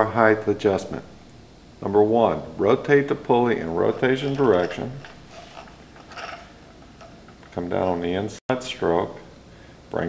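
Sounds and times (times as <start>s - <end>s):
sewing machine mechanism turning: 4.1s - 7.5s.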